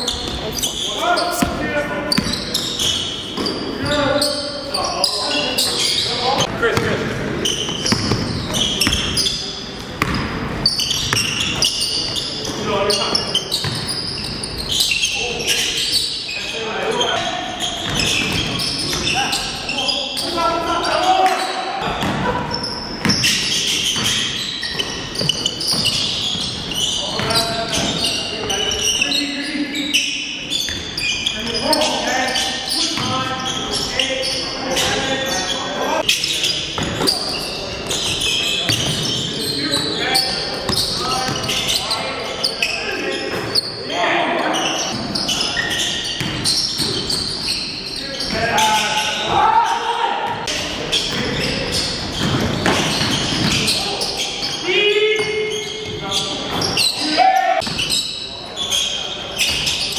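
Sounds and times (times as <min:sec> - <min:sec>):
basketball bouncing on hardwood floor: 0:10.0 - 0:10.2
players shouting: 0:48.4 - 0:50.5.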